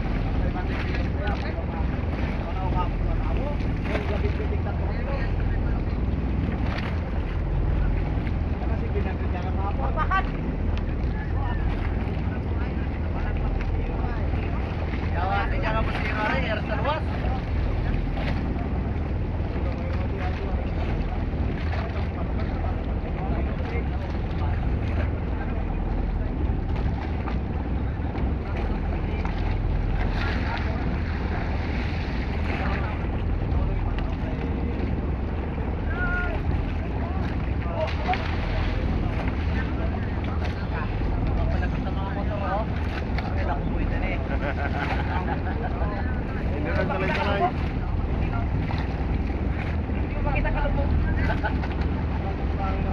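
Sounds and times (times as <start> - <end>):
water washing against boat hull: 0.0 - 52.9.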